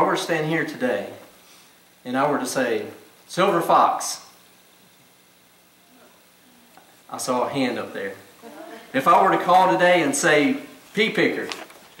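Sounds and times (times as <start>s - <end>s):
faint hum: 0.0s - 12.0s
low hiss: 0.0s - 12.0s.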